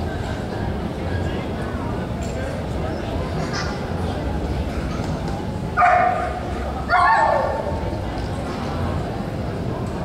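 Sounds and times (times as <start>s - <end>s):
dog barking: 5.8s - 7.6s.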